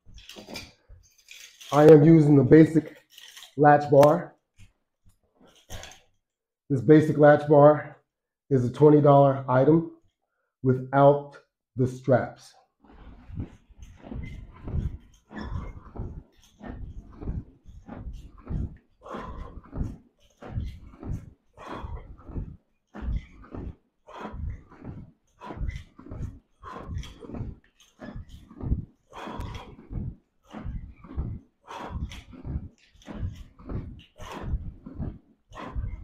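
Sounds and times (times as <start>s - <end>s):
man breathing hard: 18.4s - 36.0s.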